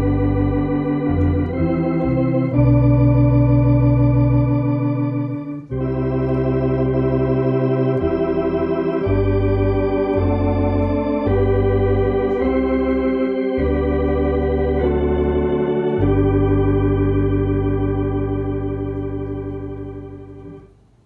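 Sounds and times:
electronic organ playing a hymn: 0:00.0 - 0:20.8.

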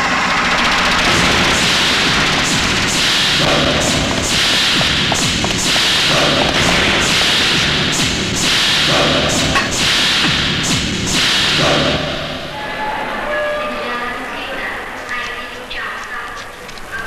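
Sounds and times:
machine gun firing bursts: 0:00.1 - 0:10.0.

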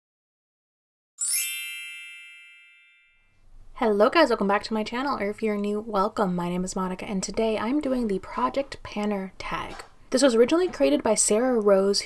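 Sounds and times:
bright chime ringing: 0:01.2 - 0:03.4.

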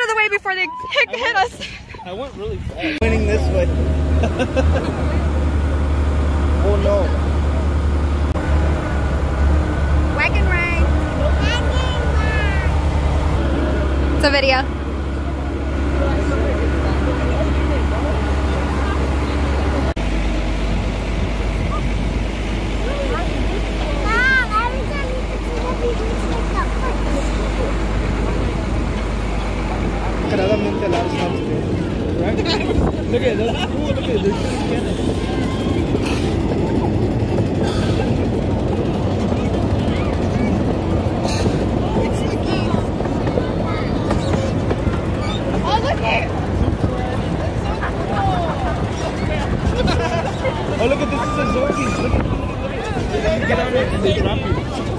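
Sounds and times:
tractor engine droning: 0:02.2 - 0:54.9
train cars rolling on rails: 0:02.4 - 0:54.9
people chattering: 0:10.2 - 0:20.0, 0:20.7 - 0:54.9
riders talking: 0:22.7 - 0:54.9.

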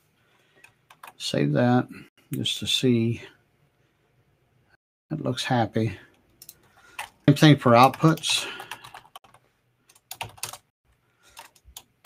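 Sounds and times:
keyboard typing: 0:00.6 - 0:01.2, 0:06.4 - 0:10.7, 0:11.3 - 0:11.9.

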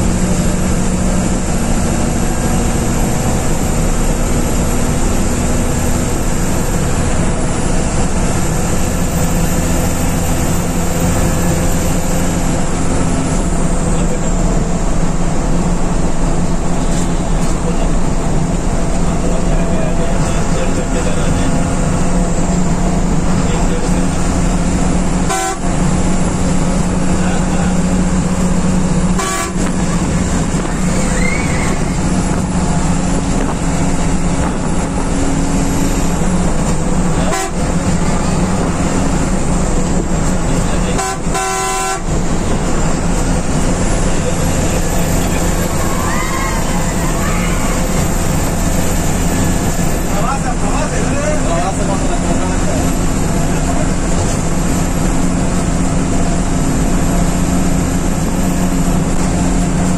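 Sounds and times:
diesel engine running: 0:00.0 - 0:59.9
road and wind noise: 0:00.0 - 0:59.9.

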